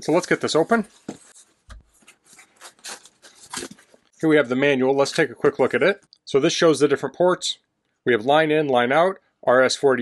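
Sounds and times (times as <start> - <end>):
rubbing and scraping on cardboard: 0.2 - 4.0.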